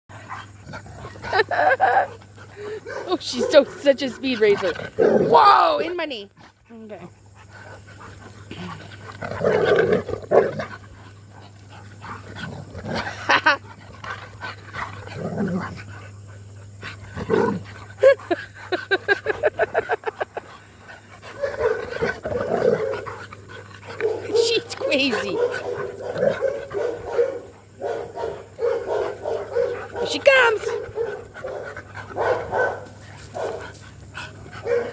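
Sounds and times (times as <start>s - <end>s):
dog play growl: 0.1s - 2.8s, 3.7s - 26.9s
dog panting: 0.1s - 4.8s, 6.4s - 9.2s, 10.6s - 34.9s
dog barking: 25.3s - 31.6s, 32.2s - 32.8s, 34.6s - 34.9s.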